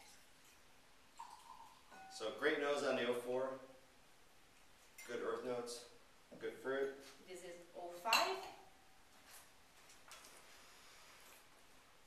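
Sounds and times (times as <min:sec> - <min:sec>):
glass clinking: 0:01.2 - 0:02.3, 0:08.1 - 0:08.9.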